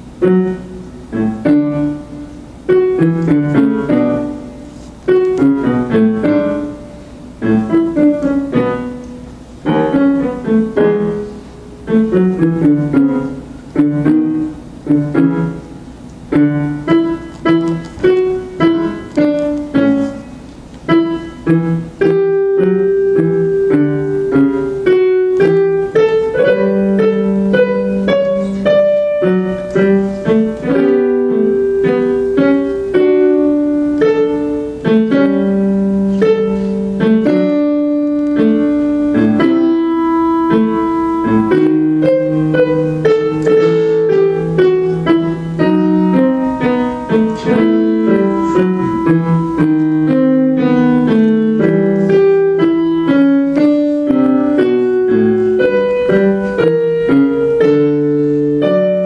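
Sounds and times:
piano improvising: 0:00.0 - 0:59.0.

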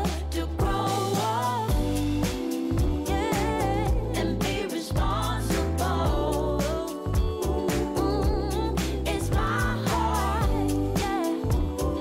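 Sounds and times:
song with singing voice: 0:00.0 - 0:12.0
steady drum beat: 0:00.0 - 0:12.0
sustained bass line: 0:00.0 - 0:12.0.

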